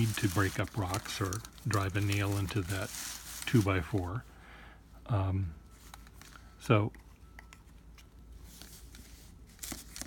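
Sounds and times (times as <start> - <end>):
hand scraping paper: 0.0 - 4.2
paper rustling: 0.0 - 4.2, 8.4 - 10.0.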